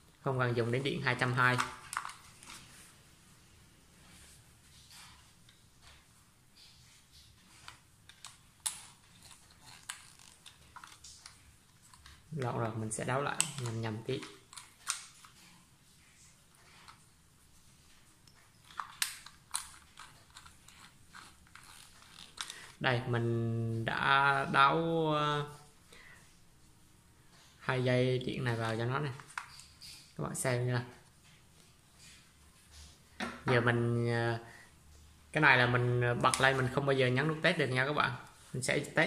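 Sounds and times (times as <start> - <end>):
soft rustle: 0.5 - 23.2
screwdriver clicks and scrapes: 1.5 - 2.6, 7.6 - 12.5, 18.6 - 22.8.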